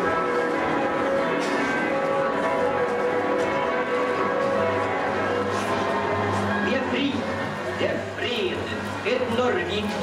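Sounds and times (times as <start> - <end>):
church bells ringing: 0.0 - 7.5.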